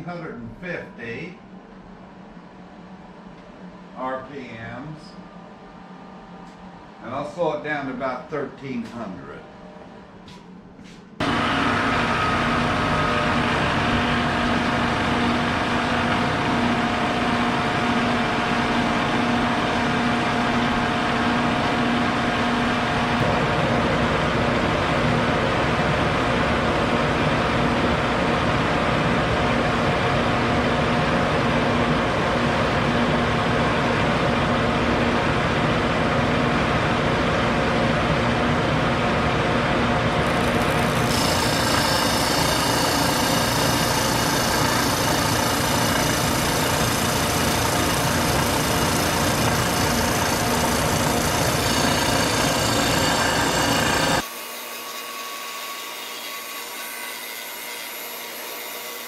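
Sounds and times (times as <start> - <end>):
motor humming: 11.2 - 21.1, 40.2 - 54.2
wood sanding against disc: 40.3 - 54.2.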